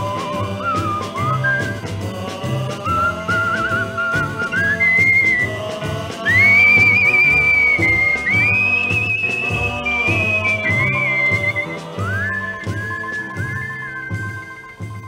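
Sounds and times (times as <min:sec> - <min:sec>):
bass and drum beat: 0:00.0 - 0:15.0
rockabilly instrumental music: 0:00.0 - 0:15.0.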